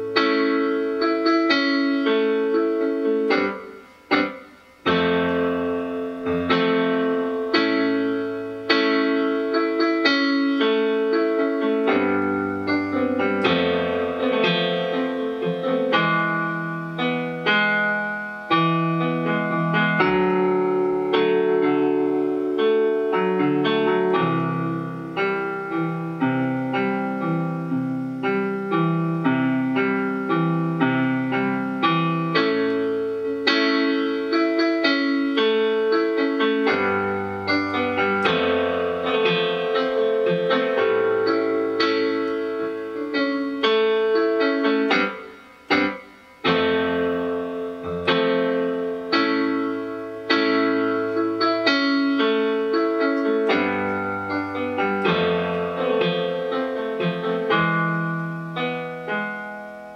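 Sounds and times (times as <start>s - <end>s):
digital piano playing chords: 0.0s - 59.9s.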